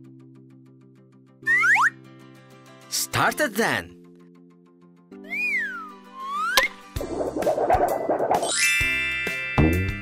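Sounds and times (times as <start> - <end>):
sliding whistle sound effect: 1.5 - 2.0, 5.3 - 8.7
cartoon music: 5.2 - 9.0.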